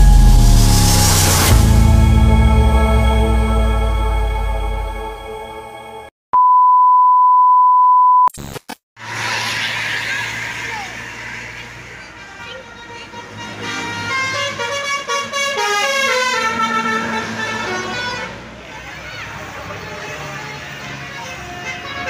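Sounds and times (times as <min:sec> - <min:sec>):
musical air horn playing tune: 0:00.0 - 0:04.4, 0:12.6 - 0:18.4
bus engine running: 0:00.0 - 0:05.8, 0:09.0 - 0:22.0.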